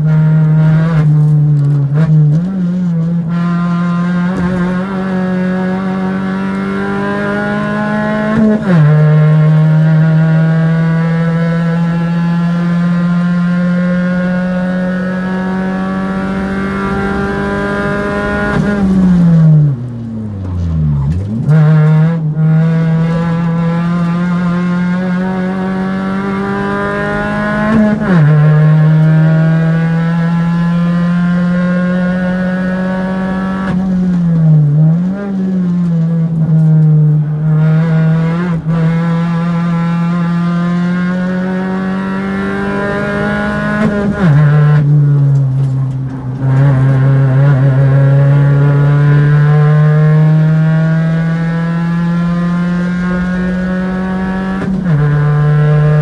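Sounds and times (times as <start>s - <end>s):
engine throttle blips downshifting: 0.0s - 56.0s
race car engine revving: 0.0s - 56.0s.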